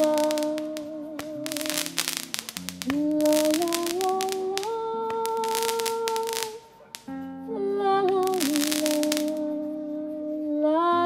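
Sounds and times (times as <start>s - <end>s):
fireworks crackling: 0.0s - 7.2s, 8.0s - 9.5s
person singing sustained la: 0.0s - 11.0s.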